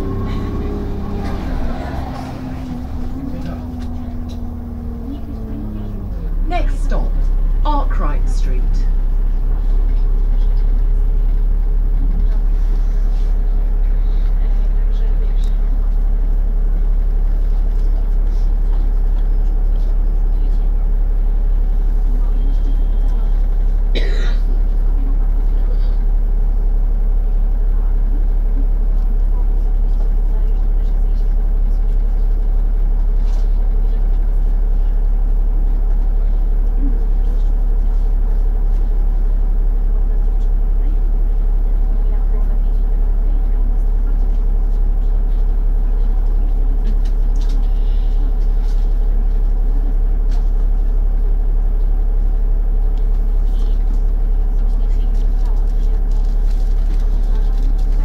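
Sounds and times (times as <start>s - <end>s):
bus diesel engine idling: 0.0s - 58.0s.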